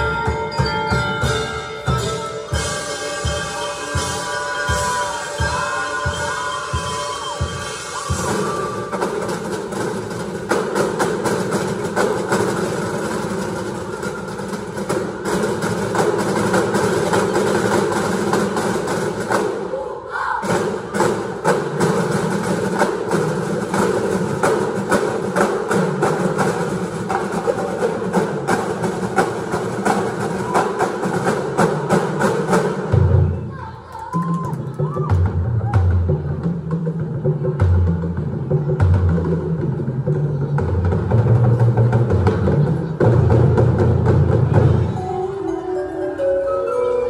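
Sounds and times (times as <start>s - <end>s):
drum and lyre corps playing: 0.0s - 47.0s.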